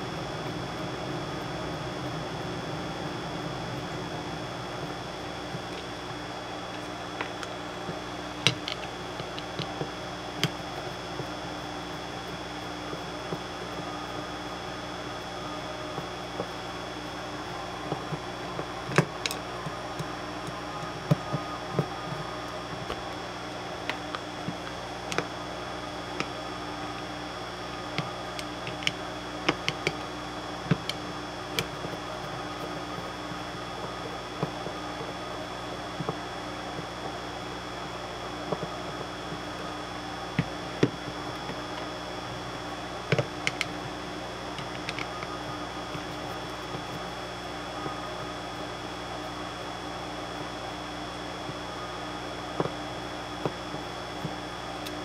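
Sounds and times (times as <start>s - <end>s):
steady background hum: 0.0s - 55.0s.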